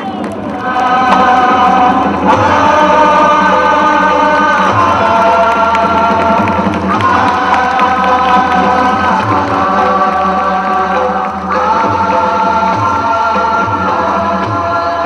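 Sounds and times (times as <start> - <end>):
group of voices chanting: 0.0 - 15.0
music: 0.0 - 15.0.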